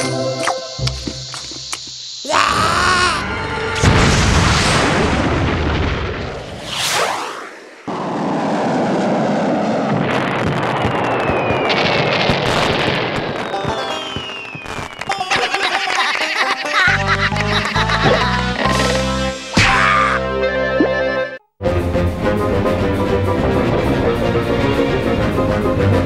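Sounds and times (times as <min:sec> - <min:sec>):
music: 0:00.0 - 0:01.6, 0:02.6 - 0:03.9, 0:16.8 - 0:26.0
loud boom: 0:03.8 - 0:14.4
whooshing pitch sweep: 0:06.3 - 0:09.9
falling whistles: 0:11.0 - 0:12.0, 0:13.4 - 0:15.3.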